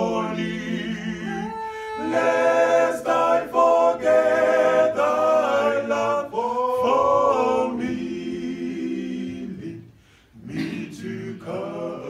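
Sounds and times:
men singing a hymn in harmony: 0.0s - 12.0s.

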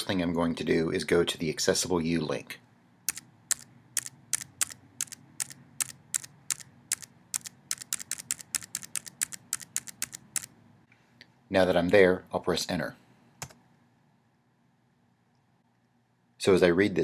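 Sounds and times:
keyboard keystrokes: 3.1s - 10.5s.

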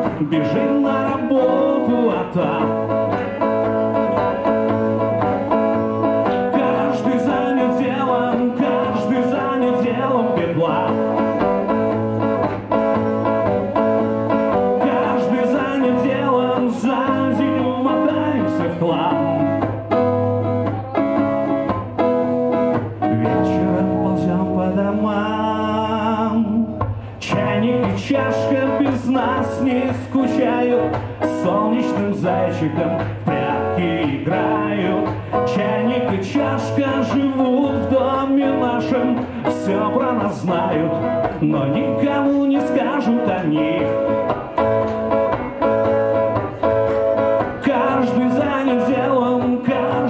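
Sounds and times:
electric guitar strumming: 0.0s - 50.0s
man singing: 0.0s - 50.0s.

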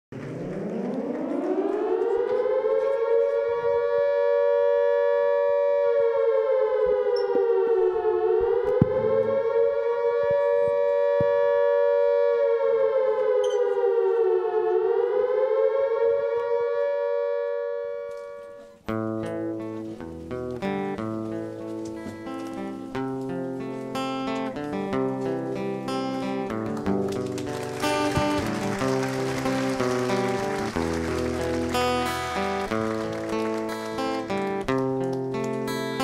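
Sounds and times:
siren wailing: 0.1s - 18.8s, 27.5s - 34.7s.

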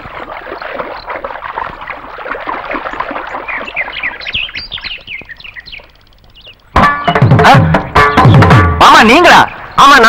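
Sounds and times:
birds chirping: 0.0s - 10.0s
music with drums: 6.7s - 9.2s.

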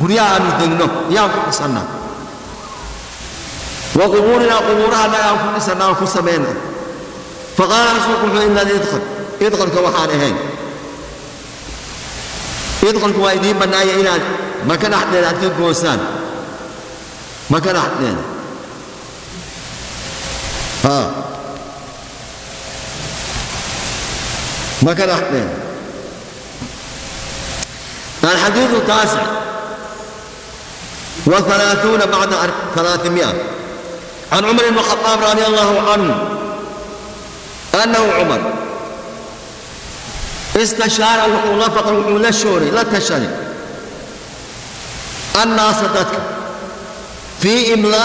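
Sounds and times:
recording background hiss: 0.0s - 48.0s.

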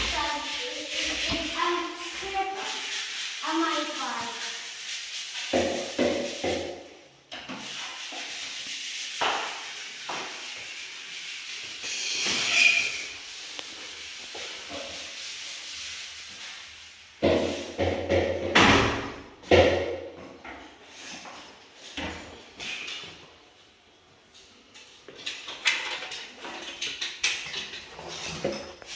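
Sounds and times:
knocks and bangs: 17.2s - 20.0s.

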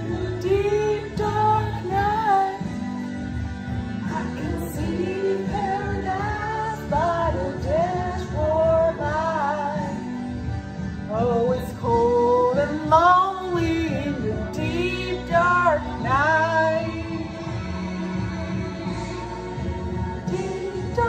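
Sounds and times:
song with sung vocals: 0.0s - 21.0s.

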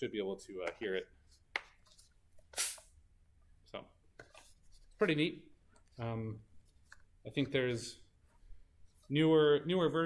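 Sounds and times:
water bottle pressure hiss: 2.5s - 3.0s.

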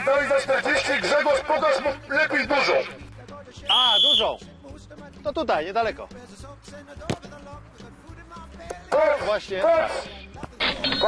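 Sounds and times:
background music with steady beat: 0.0s - 11.0s
football kicked thud: 7.0s - 7.3s.

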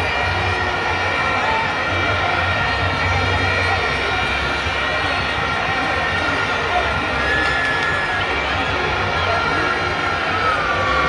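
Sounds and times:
stadium crowd din: 0.0s - 11.0s.

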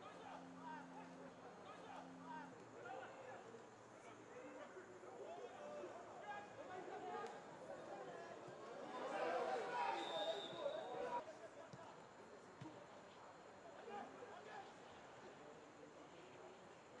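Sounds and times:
voices calling and shouting: 0.0s - 4.6s.

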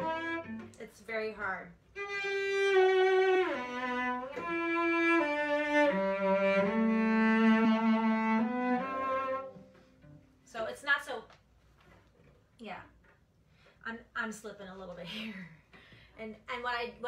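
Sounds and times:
cello bowed slowly: 0.0s - 0.8s, 1.9s - 10.4s.

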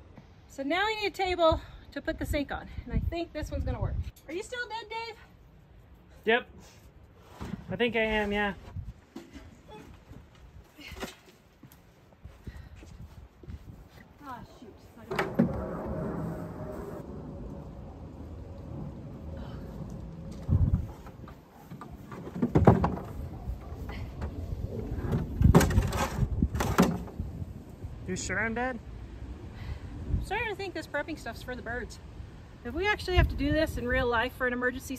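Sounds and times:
steady low rumble: 14.6s - 22.0s, 23.0s - 34.2s.

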